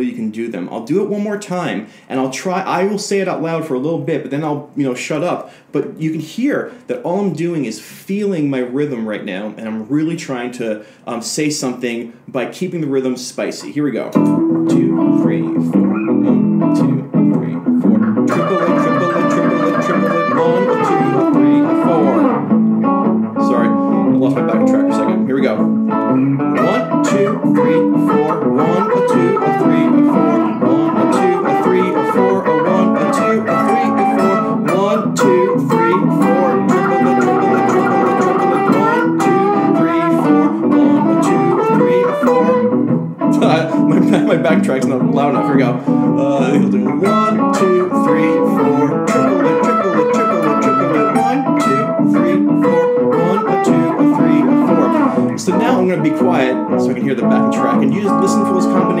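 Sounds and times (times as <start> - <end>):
electric guitar blues solo: 13.6 - 59.0.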